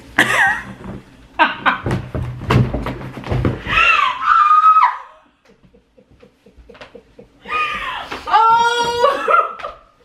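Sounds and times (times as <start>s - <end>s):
woman's high-pitched squeal: 3.8s - 5.2s
woman laughing: 5.5s - 9.9s.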